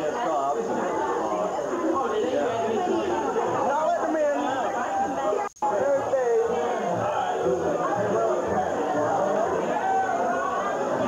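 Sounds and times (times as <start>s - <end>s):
party crowd chatter: 0.0s - 11.0s.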